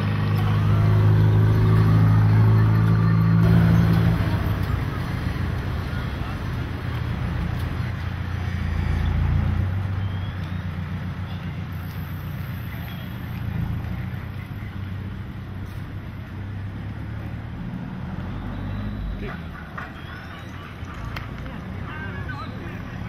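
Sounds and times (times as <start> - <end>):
vehicle engine humming: 0.0 - 23.0.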